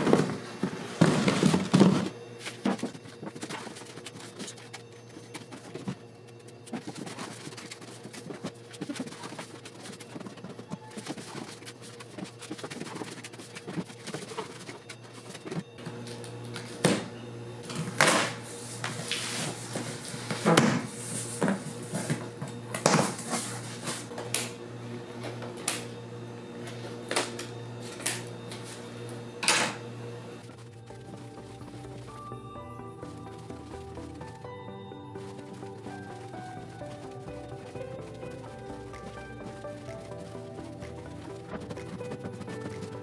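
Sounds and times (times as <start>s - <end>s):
cardboard boxes scraping and knocking: 0.0s - 6.0s
quiet background music: 0.0s - 43.0s.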